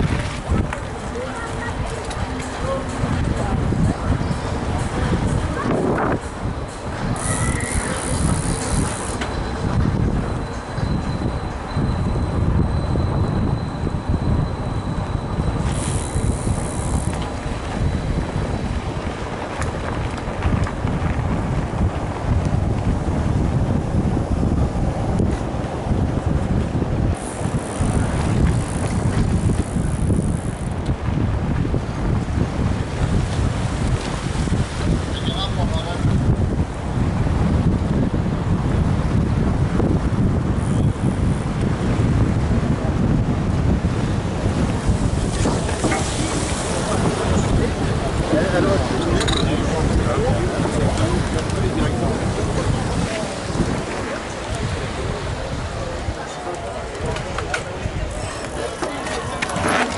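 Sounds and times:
bike tyres rolling: 0.0 - 59.9
wind buffeting microphone: 0.0 - 59.9.

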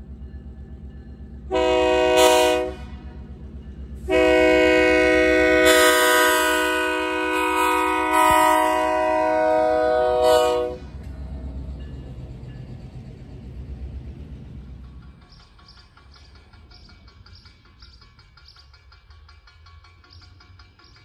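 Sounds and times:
train rumbling past: 0.0 - 21.0
locomotive horn blasts: 1.5 - 3.2, 4.0 - 11.0.

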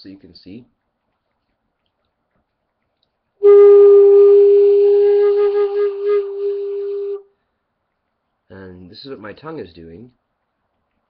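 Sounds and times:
rim flute long held note: 3.4 - 7.3.

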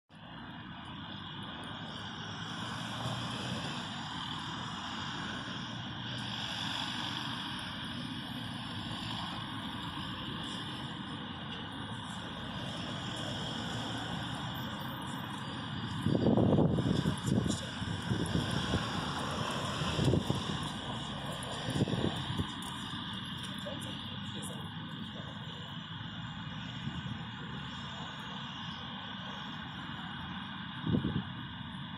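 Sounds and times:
road traffic passing: 0.1 - 31.9.

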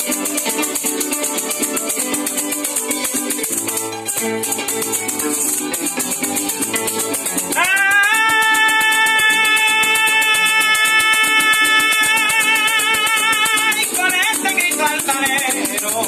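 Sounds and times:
harp: 0.0 - 16.0
maracas rattling: 0.0 - 16.0
man singing a long note: 7.6 - 14.0.

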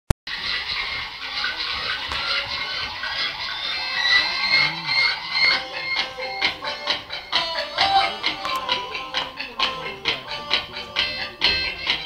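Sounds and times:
music playing: 0.3 - 12.0
voices: 0.4 - 12.0.

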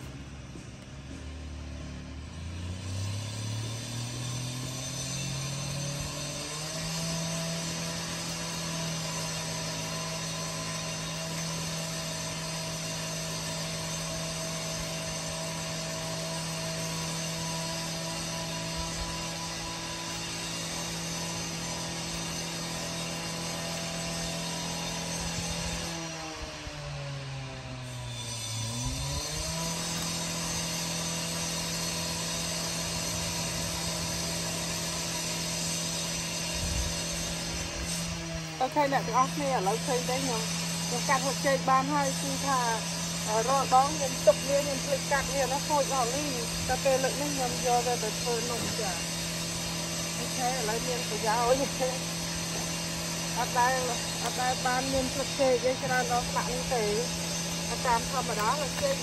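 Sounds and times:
small engine running: 0.0 - 59.0.

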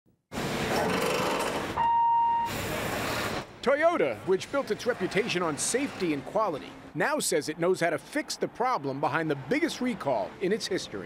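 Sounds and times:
electronic beep: 1.8 - 2.6.

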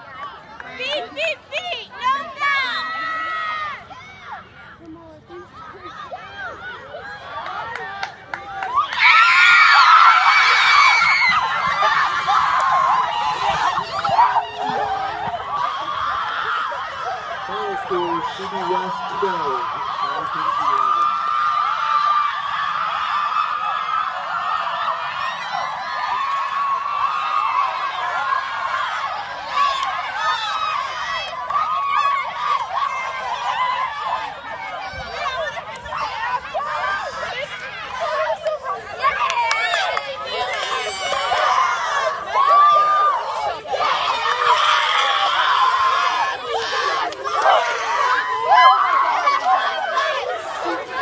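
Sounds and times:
scattered shouts and chatter: 0.0 - 51.0
high-pitched cheering shout: 6.1 - 51.0.

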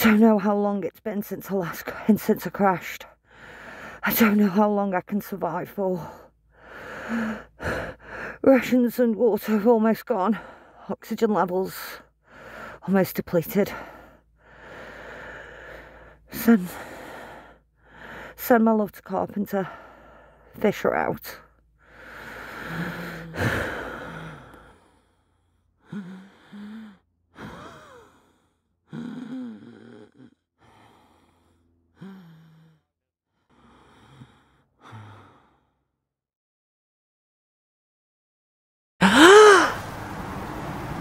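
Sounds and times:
strained breath: 3.2 - 4.0, 6.5 - 8.4, 13.8 - 18.4, 21.5 - 35.9
woman sighing: 22.1 - 24.7, 25.9 - 31.0, 39.0 - 39.8
woman moaning softly: 22.4 - 24.6, 25.8 - 28.3, 28.9 - 31.3, 32.0 - 32.8, 39.0 - 39.8.

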